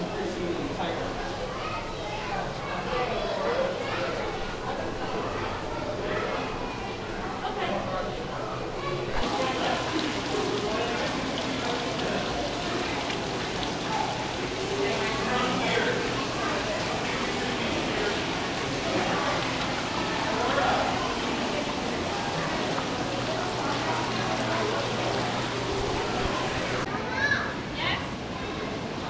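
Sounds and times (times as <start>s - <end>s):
faint voices: 0.0s - 29.0s
fountain water splashing: 9.2s - 26.9s.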